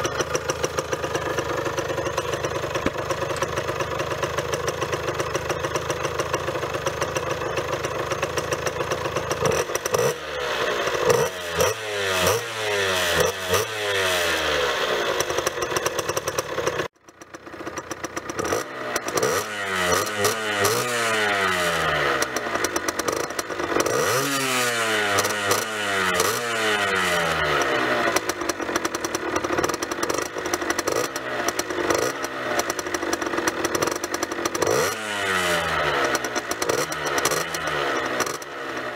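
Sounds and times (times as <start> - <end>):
two-stroke engine revving: 0.0 - 38.9.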